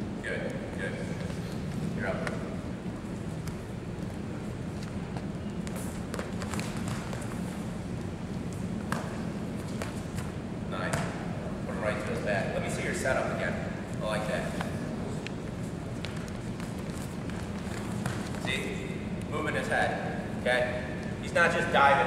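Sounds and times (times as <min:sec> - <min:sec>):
gymnasium hum: 0:00.0 - 0:22.0.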